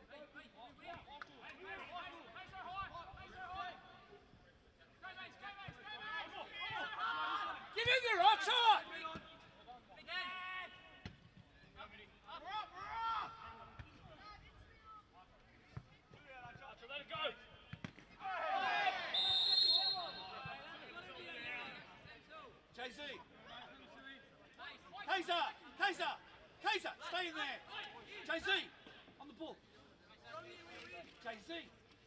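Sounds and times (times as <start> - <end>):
players shouting: 5.3 - 9.1, 18.2 - 21.8
referee's whistle blast: 19.1 - 20.4.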